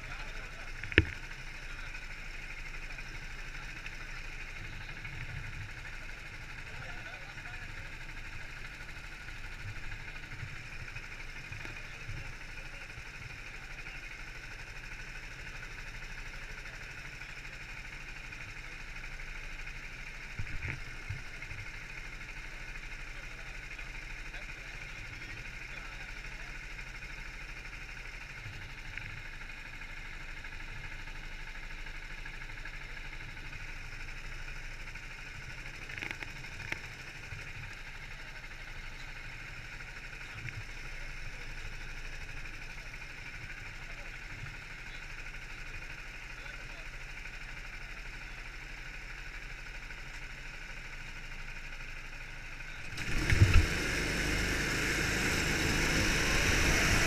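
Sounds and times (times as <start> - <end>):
go-kart engine running: 0.0 - 57.0.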